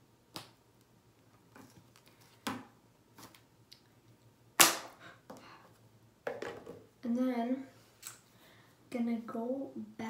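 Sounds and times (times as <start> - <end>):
object knocking on hard countertop: 6.3 - 6.8.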